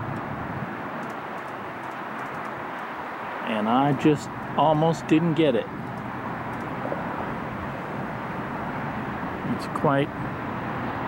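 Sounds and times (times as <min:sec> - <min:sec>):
helicopters rumbling: 0:00.0 - 0:10.7.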